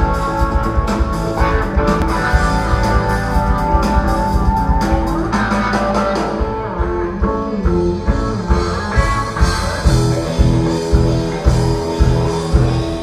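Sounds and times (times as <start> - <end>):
drum kit: 0.0 - 13.0
electric bass: 0.0 - 13.0
electric guitar: 0.0 - 13.0.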